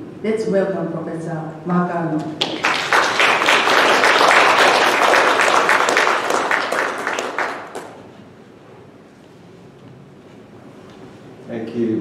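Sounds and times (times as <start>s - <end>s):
audience applauding: 2.4s - 8.1s.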